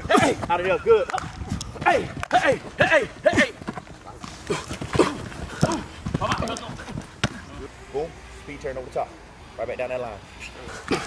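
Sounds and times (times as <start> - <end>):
man shouting hey calls: 0.0 - 1.1, 1.8 - 3.6.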